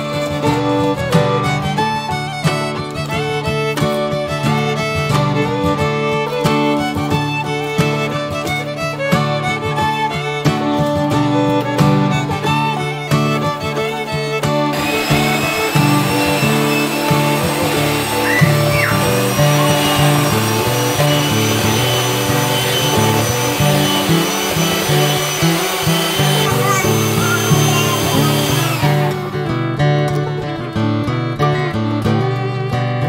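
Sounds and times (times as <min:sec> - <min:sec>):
instrumental background music: 0:00.0 - 0:33.0
electric hand mixer whirring: 0:14.7 - 0:29.4.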